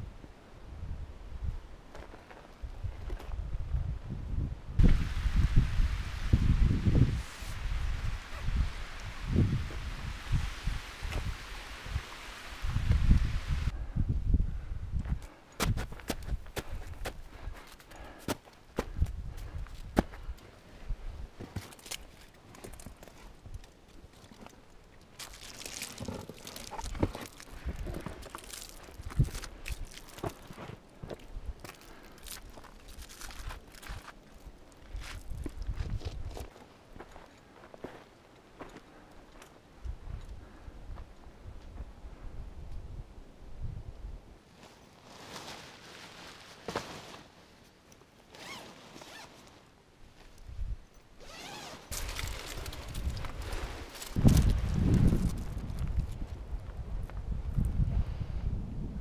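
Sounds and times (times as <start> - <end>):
hands and feet scuffing rock: 21.4 - 23.4, 25.2 - 38.8
zipper being pulled open: 48.3 - 49.4, 51.2 - 54.2.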